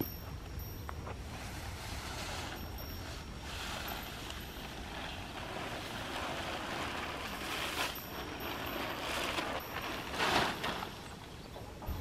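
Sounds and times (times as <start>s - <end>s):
plastic tarp scraping on sand: 1.4s - 11.3s.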